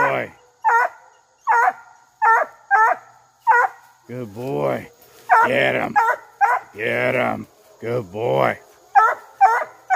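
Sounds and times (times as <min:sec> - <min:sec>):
puppy barking high-pitched: 0:00.4 - 0:03.8, 0:05.3 - 0:06.7, 0:09.0 - 0:09.9.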